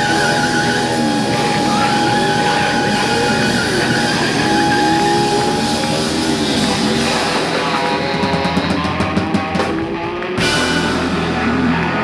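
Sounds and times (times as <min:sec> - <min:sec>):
high held note: 0:00.0 - 0:07.3
drums: 0:00.0 - 0:12.0
electric guitars: 0:00.0 - 0:12.0
saxophone: 0:00.0 - 0:12.0
sliding low notes: 0:00.0 - 0:12.0.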